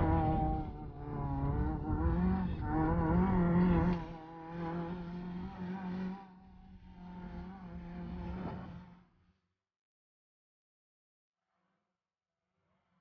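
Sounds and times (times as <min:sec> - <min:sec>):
car engine revving: 0:00.0 - 0:08.9.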